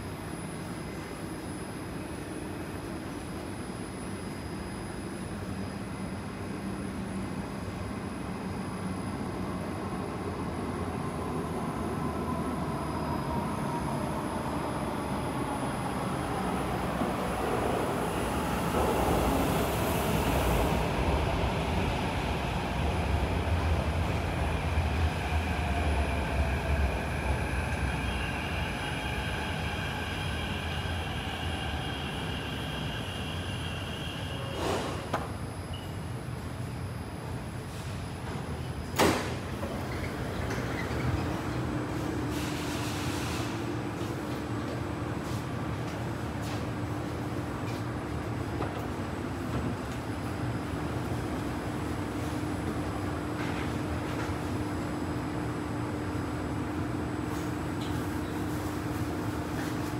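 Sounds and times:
metro train rumble: 0.0 - 59.9.

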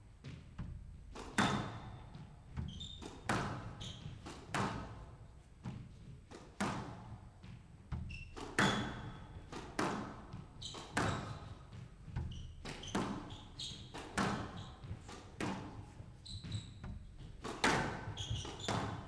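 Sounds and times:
squash ball hitting rackets and walls: 0.2 - 19.0
shoes squeaking on court floor: 1.1 - 19.0.

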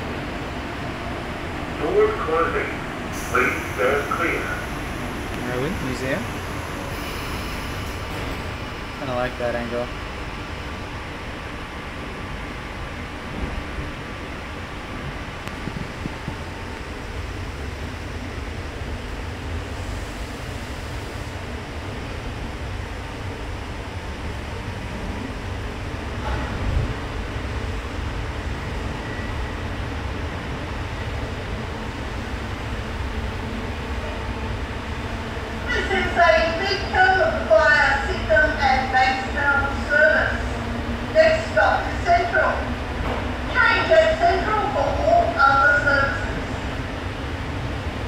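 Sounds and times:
train rumbling: 0.0 - 48.0.

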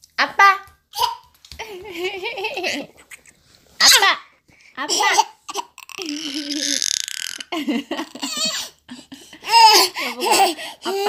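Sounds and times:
toddler laughing: 4.9 - 8.8, 9.4 - 11.0.

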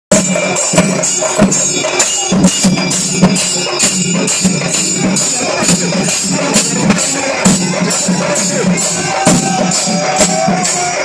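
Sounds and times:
drums beating: 0.1 - 11.0
jingling metal percussion: 0.1 - 11.0.

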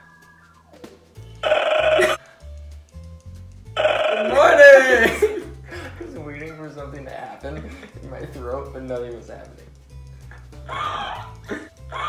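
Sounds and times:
background music with bass line: 0.0 - 12.0.

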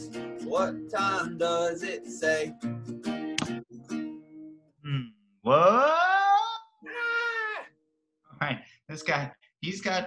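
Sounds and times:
acoustic guitar chord strummed: 0.0 - 4.5.

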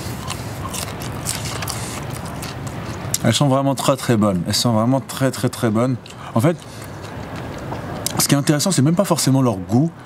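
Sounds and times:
person chewing crunchy food: 0.0 - 3.3, 6.0 - 8.2
low background hum: 0.0 - 10.0.

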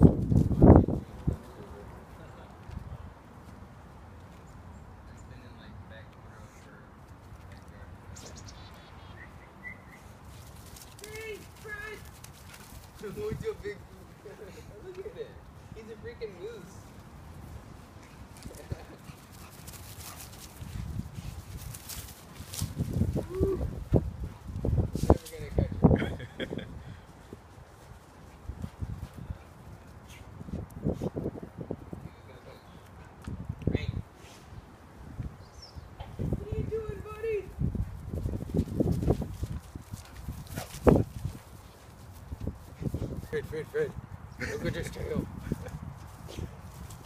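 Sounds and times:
running footfalls on grass: 10.2 - 13.7, 16.8 - 25.6, 37.5 - 44.0
person laughing: 18.5 - 19.1, 25.8 - 26.9, 44.4 - 45.8
thuds of running paws: 38.3 - 43.3.

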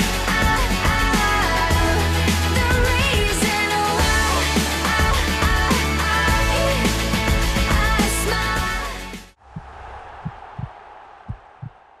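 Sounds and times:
heartbeat double thumps: 9.4 - 11.8.

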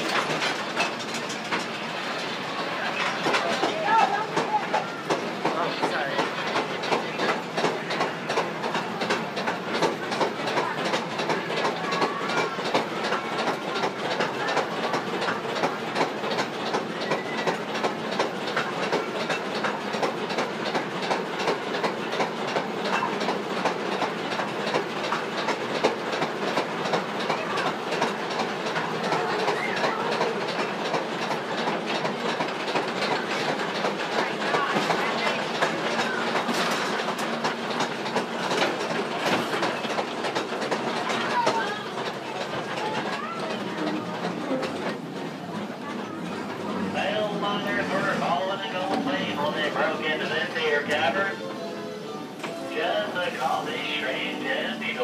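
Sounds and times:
train wheels clattering on rails: 0.0 - 55.0.

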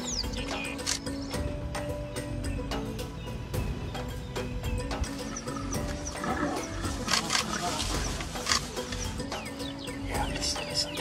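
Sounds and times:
lions growling: 5.4 - 8.6.

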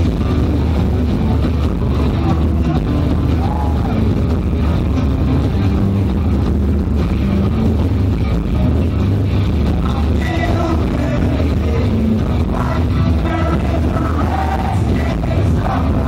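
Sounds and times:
heavy bass and drums: 0.0 - 16.0
live rock band playing: 0.0 - 16.0
person singing: 9.8 - 16.0.

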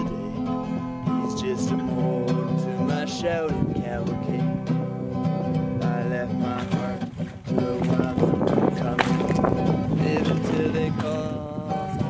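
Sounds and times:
person singing: 0.0 - 4.9, 5.8 - 12.0
song with acoustic guitar: 0.0 - 12.0.

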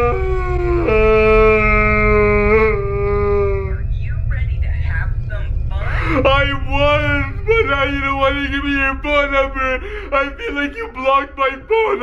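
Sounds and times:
man mock crying: 5.9 - 12.0.

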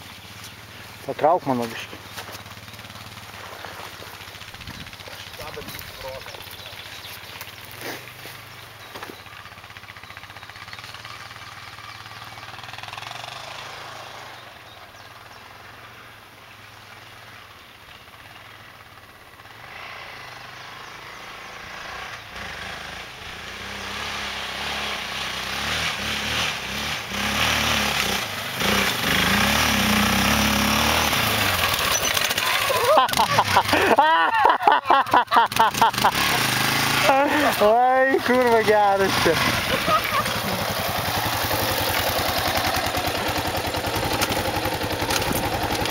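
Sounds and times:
quad bike engine revving: 0.4 - 16.0, 18.0 - 45.9.

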